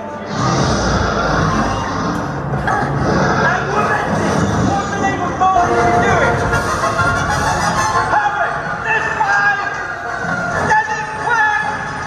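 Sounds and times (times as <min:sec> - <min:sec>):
ride soundtrack music and effects: 0:00.0 - 0:12.0.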